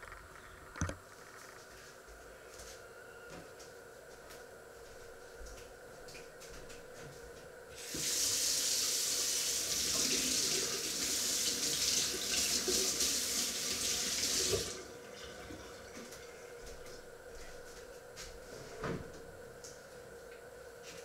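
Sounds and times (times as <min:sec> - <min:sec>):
water tap running into sink: 0:07.8 - 0:14.8.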